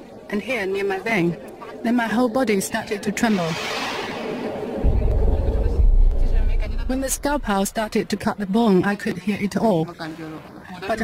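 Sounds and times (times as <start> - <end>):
deep low rumble: 4.8 - 8.4.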